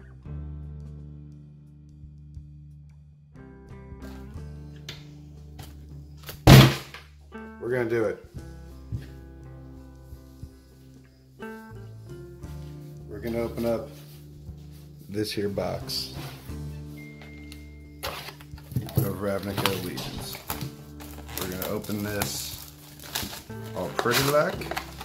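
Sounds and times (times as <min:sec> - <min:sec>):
guitar music: 0:07.2 - 0:25.0
scissors cutting plastic wrap: 0:18.0 - 0:25.0
sharp plastic rustle: 0:18.0 - 0:25.0.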